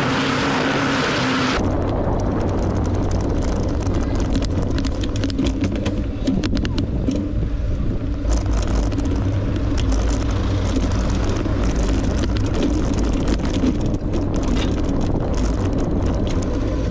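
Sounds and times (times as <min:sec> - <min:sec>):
tyre noise on rough asphalt: 0:00.0 - 0:16.9
wind rumble on microphone: 0:00.0 - 0:16.9
bike clicks and rattles: 0:01.6 - 0:16.9.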